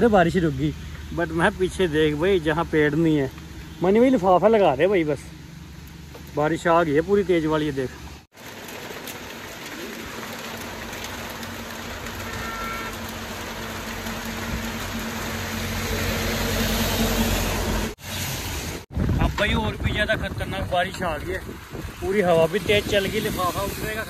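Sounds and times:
truck passing: 0.0s - 18.8s
traffic hiss on wet road: 0.0s - 24.0s
heavy rain: 8.1s - 24.0s.

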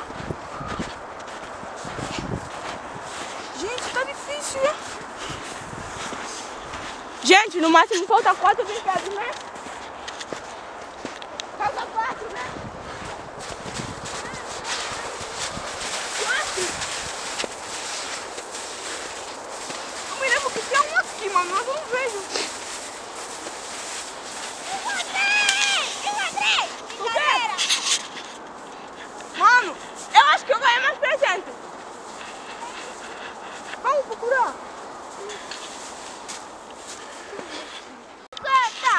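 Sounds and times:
hands digging in snow: 0.8s - 38.9s
children calling out: 14.1s - 16.9s, 24.4s - 27.8s.

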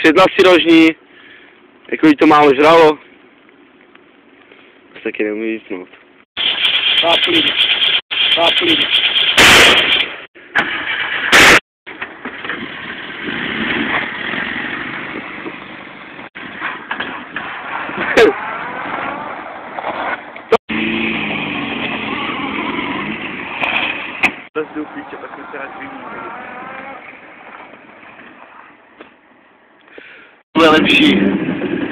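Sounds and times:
car engine revving: 20.7s - 28.4s
microphone wind buffeting: 30.6s - 31.9s.

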